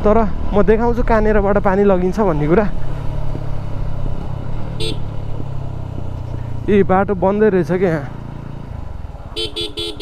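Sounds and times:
motorcycle engine running: 0:00.2 - 0:10.0.

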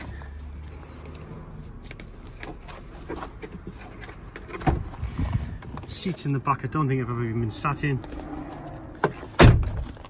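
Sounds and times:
car door thump: 0:09.0 - 0:09.8.

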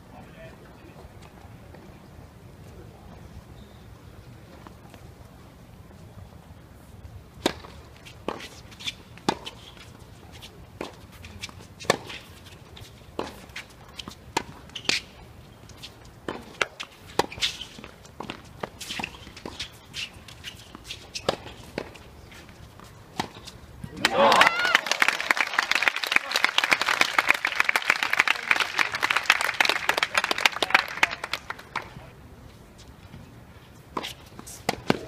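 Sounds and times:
shoe squeaks: 0:03.5 - 0:03.9, 0:08.0 - 0:10.5, 0:11.1 - 0:23.6
tennis racket hitting ball: 0:07.4 - 0:09.7, 0:10.8 - 0:15.1, 0:15.8 - 0:22.1, 0:22.8 - 0:24.3, 0:34.0 - 0:35.0.

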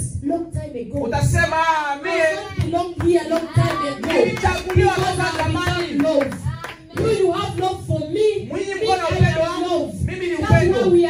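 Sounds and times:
people clapping in rhythm: 0:02.1 - 0:08.2.

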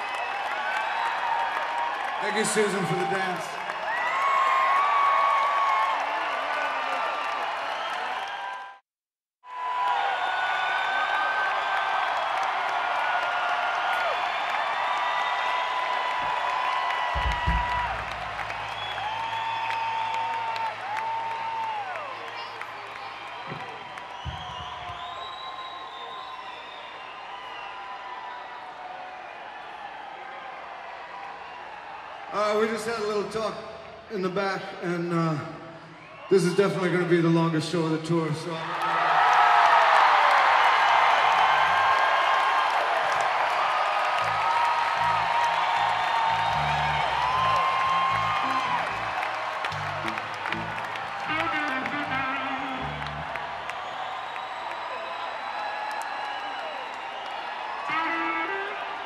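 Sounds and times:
crowd cheering and whistling: 0:00.0 - 0:08.8, 0:09.4 - 0:59.0.

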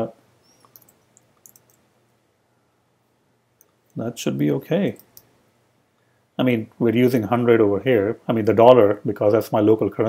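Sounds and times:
faint computer mouse clicks: 0:00.5 - 0:01.8.

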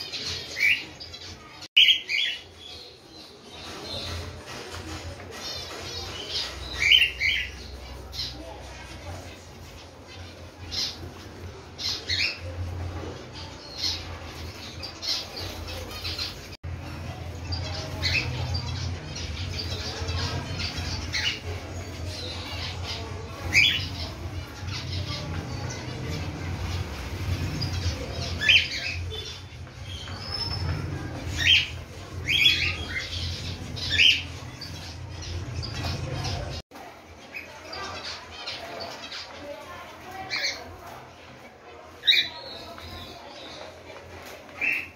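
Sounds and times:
cockatiels calling: 0:27.3 - 0:35.0.

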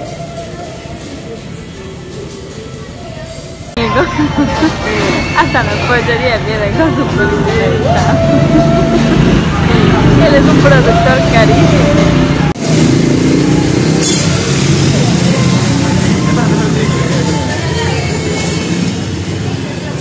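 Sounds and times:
overlapping voices and chatter: 0:00.0 - 0:20.0.

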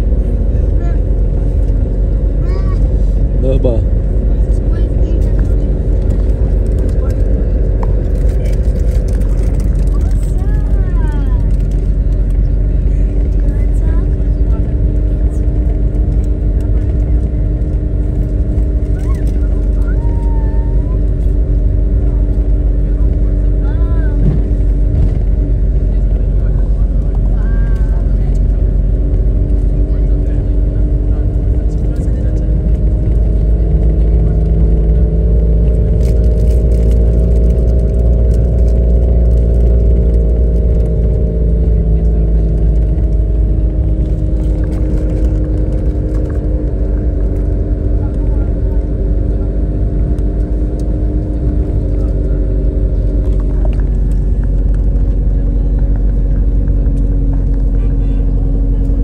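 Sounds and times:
car engine drone: 0:00.0 - 0:59.0
road rumble: 0:00.0 - 0:59.0.

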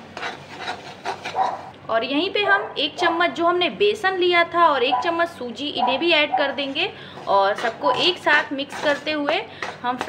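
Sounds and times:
spatula scraping steel pan: 0:00.0 - 0:01.6, 0:06.5 - 0:10.0.

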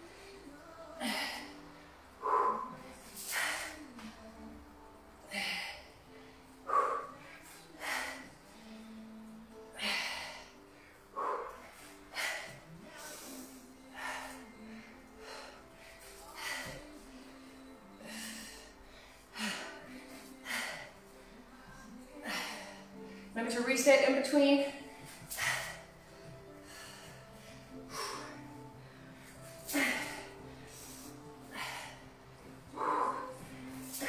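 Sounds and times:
woman breathing hard: 0:00.0 - 0:04.5, 0:05.2 - 0:23.4, 0:24.8 - 0:34.0
faint background music: 0:00.0 - 0:34.0.

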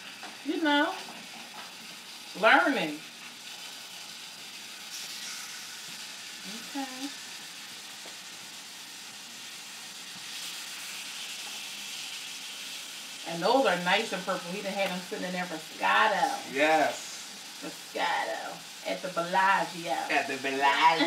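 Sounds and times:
steaks sizzling in pan: 0:00.0 - 0:21.0.

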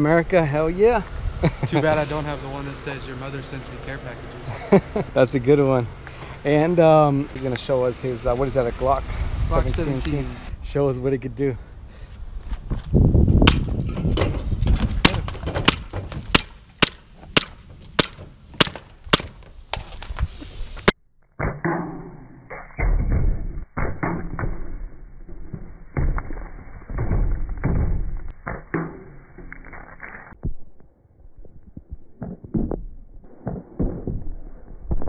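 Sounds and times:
airsoft pistol firing sharp shots: 0:13.4 - 0:13.7.

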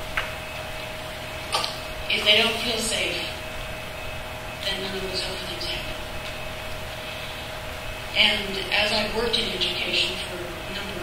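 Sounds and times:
faint steady hum: 0:00.0 - 0:11.0
room noise hiss: 0:00.0 - 0:11.0.

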